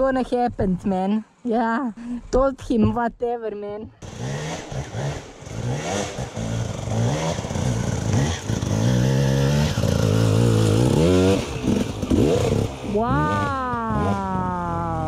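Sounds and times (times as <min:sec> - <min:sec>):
dirt bike engine revving: 0:04.0 - 0:15.0.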